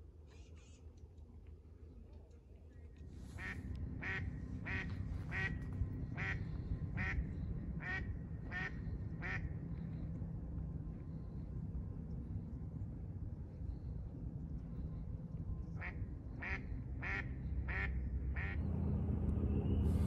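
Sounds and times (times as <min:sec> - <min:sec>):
duck quacking: 0:03.4 - 0:05.6, 0:06.2 - 0:06.4, 0:07.0 - 0:07.2, 0:07.8 - 0:09.4, 0:15.8 - 0:18.6.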